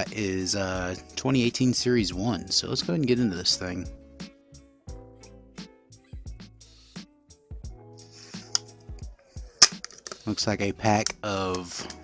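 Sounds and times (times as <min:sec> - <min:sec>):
background music with a beat: 0:00.0 - 0:12.0.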